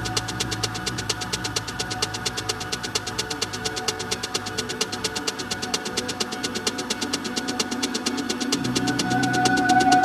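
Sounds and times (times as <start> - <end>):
dark techno track: 0.0 - 10.0
fast hi-hat ticks: 0.0 - 10.0
low synth drone: 0.0 - 10.0.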